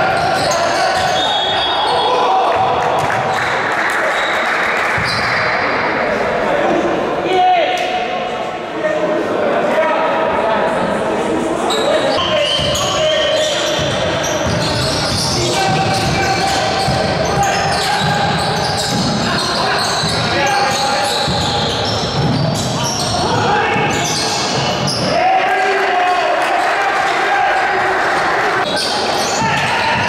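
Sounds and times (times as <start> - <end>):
voices and calls in hall: 0.0 - 30.0
basketball bouncing on court: 13.7 - 23.1.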